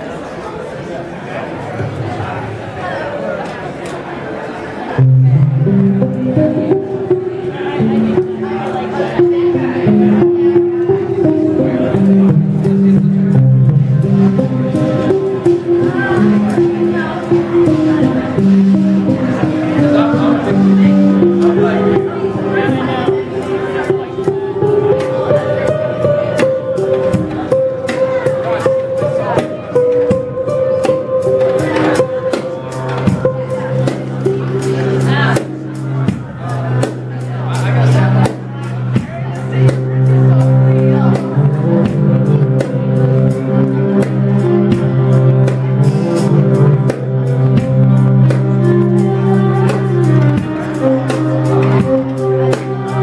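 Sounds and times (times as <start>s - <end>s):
upright bass: 5.0s - 53.0s
drum kit and cymbals: 11.2s - 53.0s.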